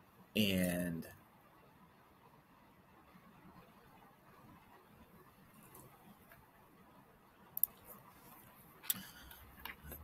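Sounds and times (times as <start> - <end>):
computer mouse clicks: 7.6 - 7.9.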